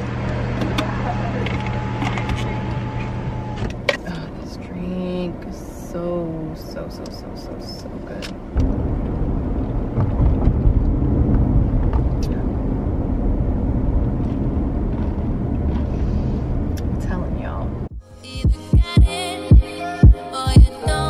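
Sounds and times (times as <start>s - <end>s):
car cabin road rumble: 0.0s - 17.9s
music with heavy bass beat: 17.9s - 21.0s.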